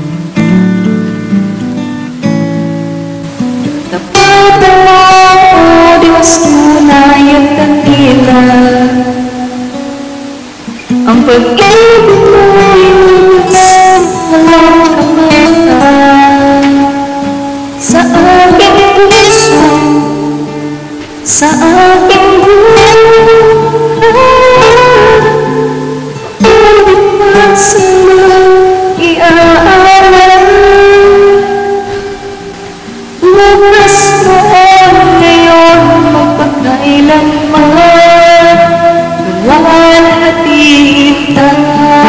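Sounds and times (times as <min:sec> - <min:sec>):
music backing track: 0:00.0 - 0:42.0
woman singing with echo: 0:03.6 - 0:42.0.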